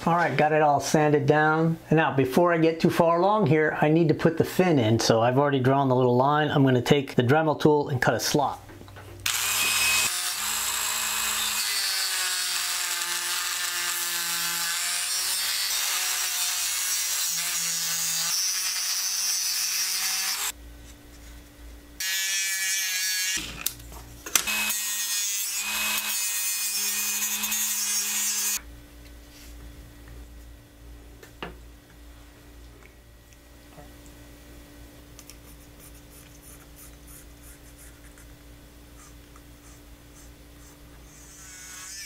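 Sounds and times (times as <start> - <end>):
rotary tool cutting wood: 9.2 - 20.6, 24.4 - 28.6, 41.1 - 42.0.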